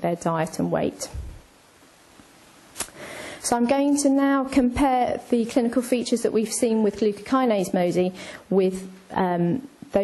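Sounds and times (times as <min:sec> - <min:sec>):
faint room hiss: 0:00.0 - 0:10.0.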